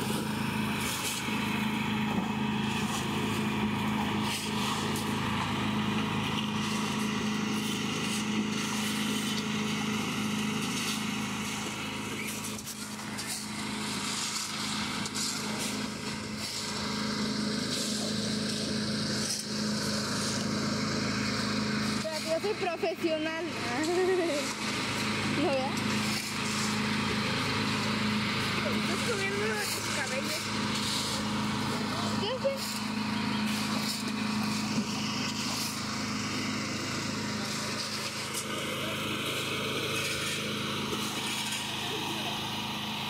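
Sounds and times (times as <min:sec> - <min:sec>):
concrete mixer engine running: 0:00.0 - 0:43.0.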